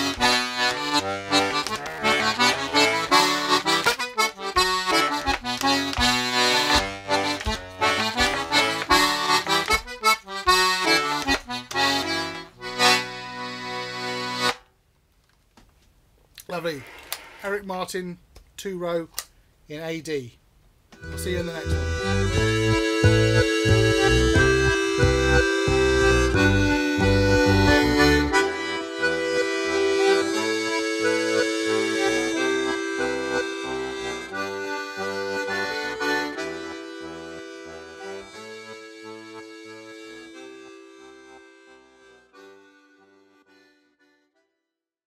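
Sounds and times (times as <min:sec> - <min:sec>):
accordion bass chords: 0:00.0 - 0:14.7, 0:21.0 - 0:44.5
button accordion tune: 0:00.0 - 0:14.7, 0:21.0 - 0:44.5.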